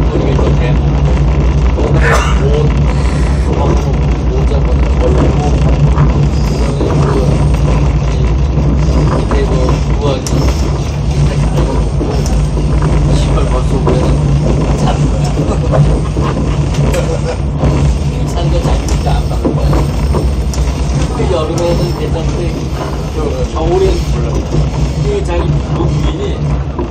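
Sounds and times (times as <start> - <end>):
diesel railcar engine drone: 0.0 - 26.9
train rolling rumble: 0.0 - 26.9
wheels clicking over rails: 0.0 - 26.9.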